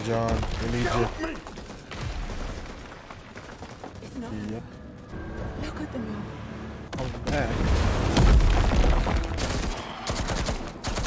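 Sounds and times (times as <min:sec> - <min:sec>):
gunfire: 0:07.3 - 0:11.0.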